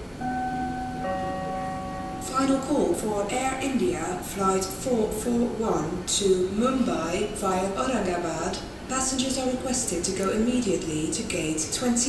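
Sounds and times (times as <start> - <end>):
two-tone public address chime: 0.0 - 5.2.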